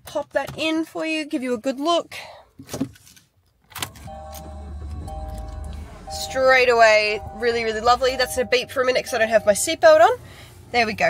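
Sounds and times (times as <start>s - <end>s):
car engine starting and idling: 3.7s - 11.0s
ignition key click: 3.8s - 8.7s
seatbelt warning beep: 3.8s - 10.2s.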